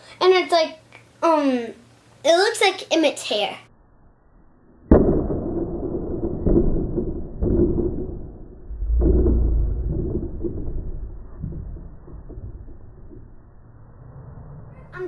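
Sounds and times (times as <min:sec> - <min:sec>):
sharp crack: 0:04.9 - 0:13.4
muffled boom-like rumble: 0:06.2 - 0:13.6.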